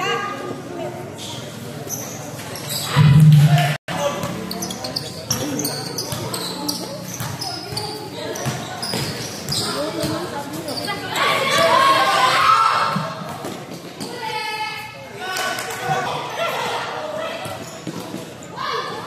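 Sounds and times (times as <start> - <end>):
people talking and calling out: 0.0 - 19.0.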